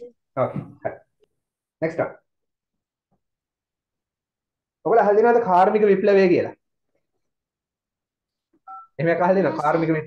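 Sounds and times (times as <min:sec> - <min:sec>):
two-tone electronic beep: 0:08.7 - 0:09.7
man speaking: 0:09.0 - 0:10.0.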